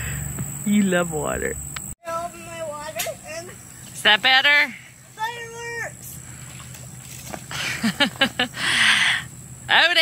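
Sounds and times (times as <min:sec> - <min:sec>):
water splashing in paddling pool: 0:05.0 - 0:07.9
person laughing: 0:07.5 - 0:09.2.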